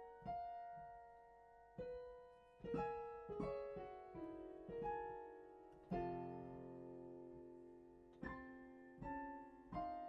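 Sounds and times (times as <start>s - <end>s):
upright piano chords: 0.0s - 10.0s.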